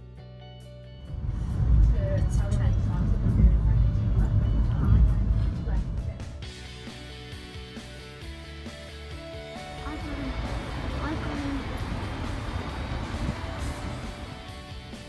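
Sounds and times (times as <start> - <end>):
background music: 0.0 - 15.0
train carriage rumble: 1.1 - 6.4, 9.8 - 14.6.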